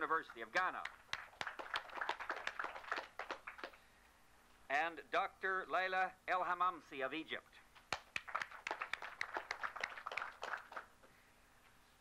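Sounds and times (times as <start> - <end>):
audience applause: 0.9 - 3.8, 8.0 - 11.0.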